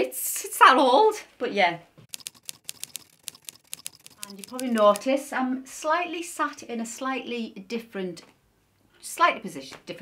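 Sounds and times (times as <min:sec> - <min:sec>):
small dry clicks: 0:02.0 - 0:05.1.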